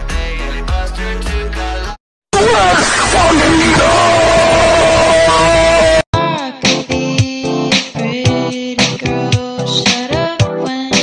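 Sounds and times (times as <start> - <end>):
heavily distorted noise: 2.4 - 6.1.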